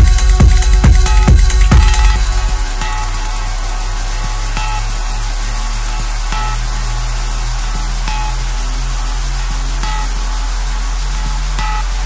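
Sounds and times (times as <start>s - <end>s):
techno track: 0.0s - 12.0s.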